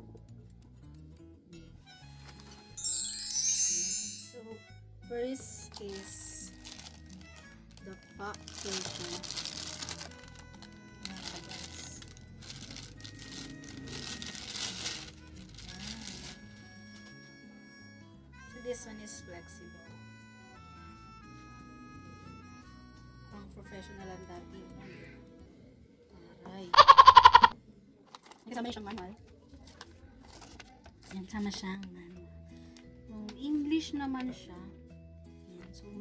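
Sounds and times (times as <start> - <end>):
background music: 0.0 - 27.6, 31.0 - 36.0
woman speaking: 4.3 - 6.6, 7.8 - 9.4, 11.0 - 12.0, 18.6 - 19.8
plastic bag crinkling: 5.5 - 17.1
paper rustling: 5.8 - 16.5, 29.6 - 31.6.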